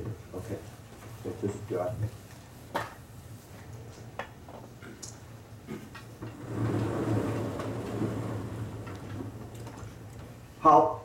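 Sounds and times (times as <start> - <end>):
chalkboard panel sliding rumble: 6.2 - 10.3.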